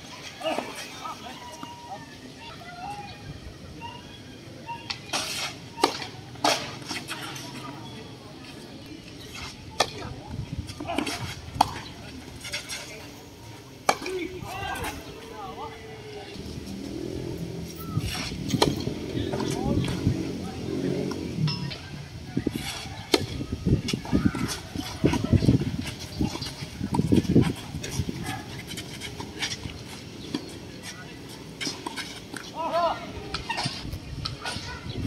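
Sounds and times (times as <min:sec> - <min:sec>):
tennis rackets hitting ball: 0:05.1 - 0:07.4, 0:17.8 - 0:20.0.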